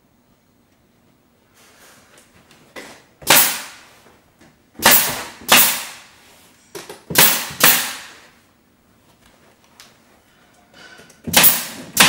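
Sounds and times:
nail gun firing with hiss: 0:03.2 - 0:03.9, 0:04.8 - 0:06.1, 0:07.1 - 0:08.2, 0:11.3 - 0:12.0.

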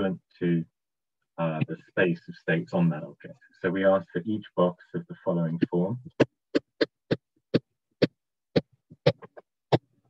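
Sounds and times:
stylus tapping on tablet: 0:06.1 - 0:09.9.

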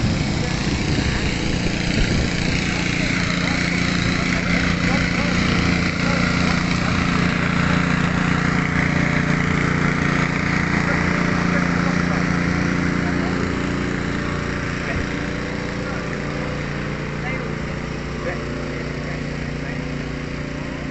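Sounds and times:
air blower humming: 0:00.0 - 0:20.9.

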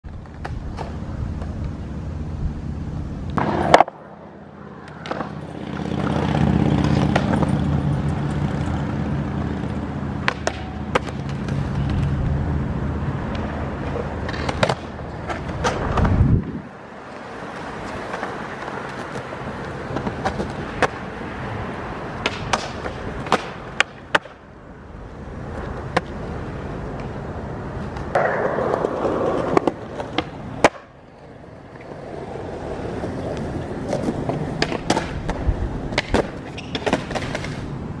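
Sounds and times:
skateboard wheels rolling on concrete: 0:00.0 - 0:38.0
skateboard clacks: 0:00.1 - 0:01.8, 0:03.3 - 0:12.4, 0:13.2 - 0:16.2, 0:17.0 - 0:38.0.

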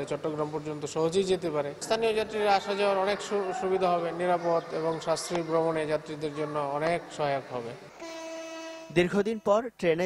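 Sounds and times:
man's voice: 0:00.0 - 0:07.9, 0:08.9 - 0:10.0.

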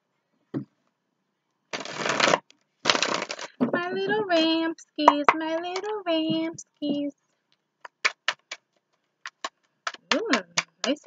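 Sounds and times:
cards being shuffled: 0:01.7 - 0:03.6, 0:07.8 - 0:11.0
woman's singsong voice: 0:03.6 - 0:07.1.

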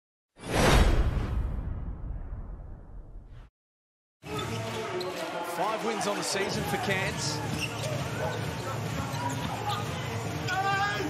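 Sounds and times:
low rumble: 0:00.7 - 0:03.5.

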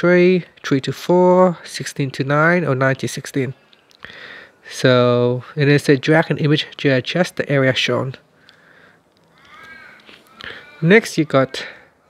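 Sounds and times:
faint harsh bird call: 0:08.6 - 0:12.0.

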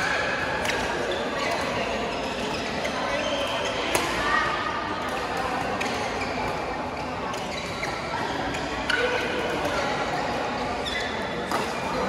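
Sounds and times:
murmur of many voices: 0:00.0 - 0:12.0
shoes squeaking on court: 0:00.6 - 0:03.9, 0:05.6 - 0:12.0
rackets striking shuttlecock: 0:03.4 - 0:04.2, 0:11.4 - 0:11.8.

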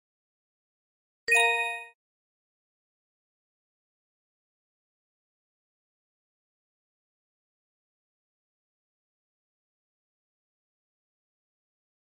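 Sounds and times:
electronic chime ding: 0:01.3 - 0:02.0.

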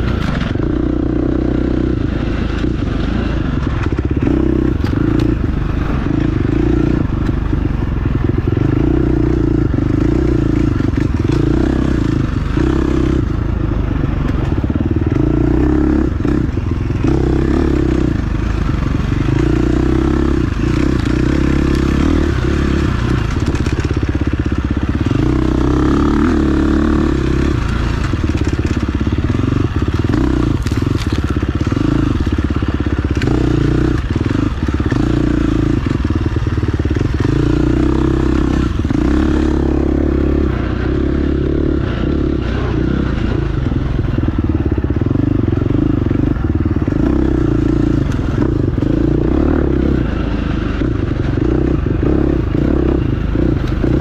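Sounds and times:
dirt bike engine revving: 0:00.0 - 0:54.0
bike clattering and scraping: 0:27.3 - 0:39.6.

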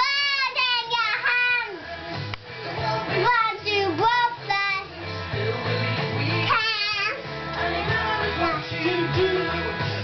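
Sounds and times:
child singing: 0:00.0 - 0:01.9, 0:02.8 - 0:05.0, 0:06.4 - 0:09.4
recorded song with guitar and bass: 0:00.0 - 0:10.0.

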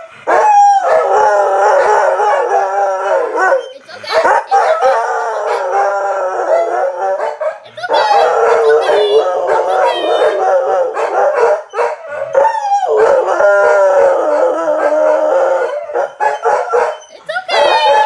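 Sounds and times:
dogs howling: 0:00.0 - 0:18.0.

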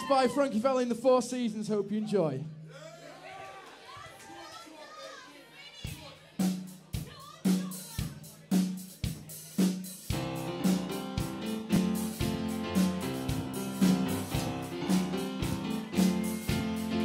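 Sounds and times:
steady drum beat: 0:05.9 - 0:17.0
live band playing: 0:06.4 - 0:17.0
audience chatter: 0:12.4 - 0:17.0.

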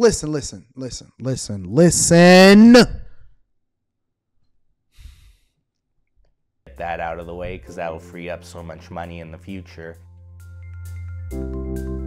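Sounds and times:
person sighing: 0:05.0 - 0:05.4.

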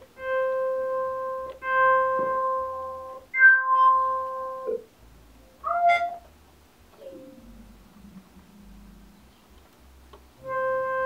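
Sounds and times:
synthesizer notes: 0:00.0 - 0:06.3, 0:07.0 - 0:09.6, 0:10.4 - 0:11.0.

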